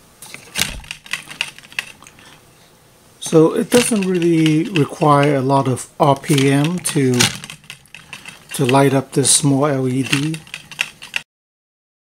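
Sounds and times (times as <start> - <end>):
toy windmill clicking and rattling: 0.6 - 2.3, 3.3 - 11.2.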